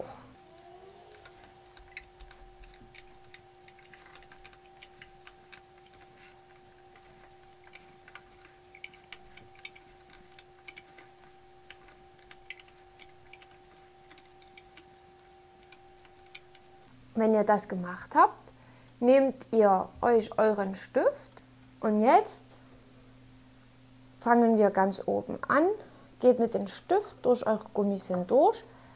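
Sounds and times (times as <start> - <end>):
faint steady hum: 0.0 - 28.9
small clicks of loom hook and bands: 1.1 - 16.7.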